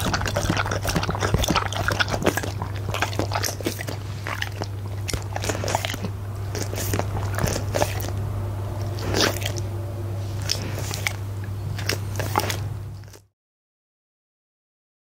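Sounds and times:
dog licking and chewing: 0:00.0 - 0:13.2.

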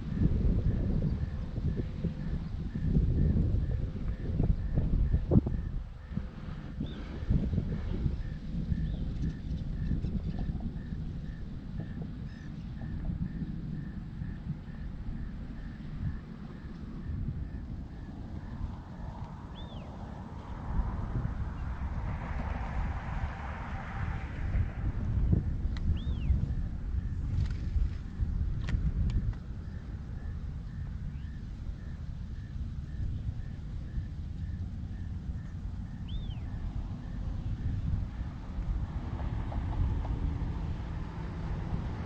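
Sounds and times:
wind rumbling on microphone: 0:00.0 - 0:42.0.

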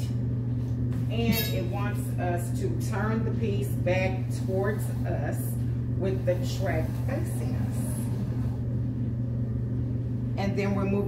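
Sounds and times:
steady low hum: 0:00.0 - 0:11.0
woman speaking: 0:01.1 - 0:08.3, 0:10.4 - 0:11.0.

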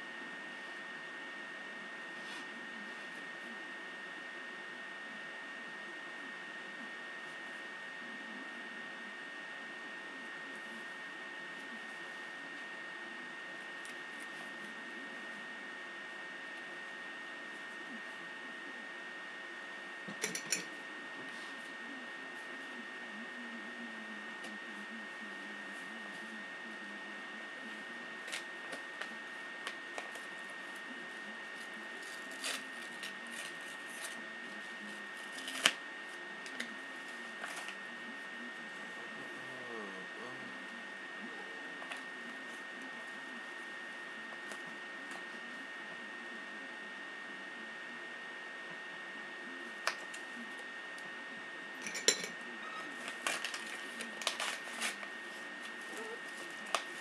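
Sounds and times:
thin high whine: 0:00.0 - 0:57.0.

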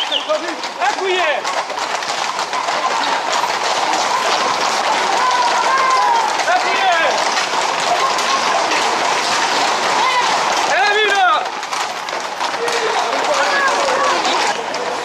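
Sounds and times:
horses' hooves clattering on asphalt: 0:00.0 - 0:15.0
people shouting: 0:00.0 - 0:15.0.

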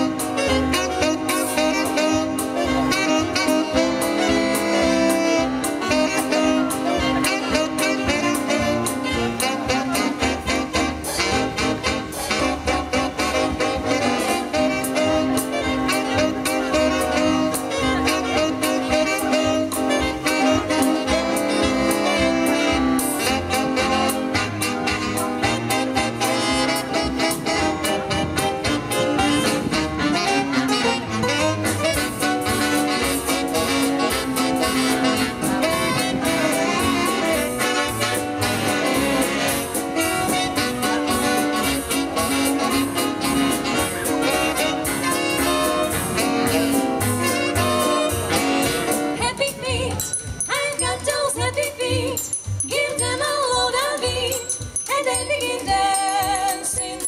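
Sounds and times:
saxophone section playing: 0:00.0 - 0:49.8
big band swing jazz: 0:00.0 - 0:57.0
drum kit steady beat: 0:00.0 - 0:57.0.

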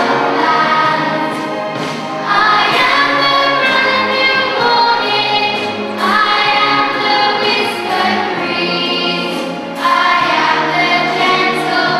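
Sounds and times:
children's choir singing: 0:00.0 - 0:11.9
orchestra playing: 0:00.0 - 0:11.9.

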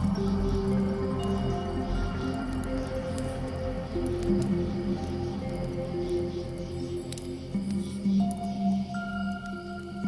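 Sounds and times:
fire crackling and popping: 0:00.0 - 0:10.0
soft slow piano music: 0:00.0 - 0:10.0.

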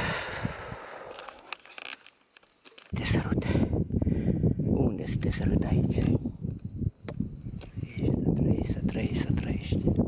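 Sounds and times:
cricket trilling: 0:00.0 - 0:10.0
low rumbling on microphone: 0:02.9 - 0:10.0.

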